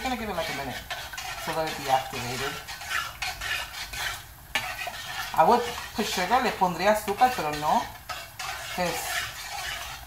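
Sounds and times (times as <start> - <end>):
metal spoon stirring in a pot: 0.0 - 10.0.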